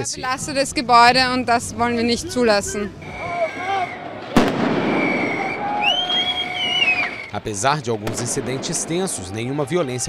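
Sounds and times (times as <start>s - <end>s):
crowd shouting: 1.3s - 7.3s, 8.9s - 10.0s
shrill whistling: 2.8s - 4.2s, 4.9s - 7.4s
firecracker bang: 4.0s - 7.3s, 8.0s - 9.5s.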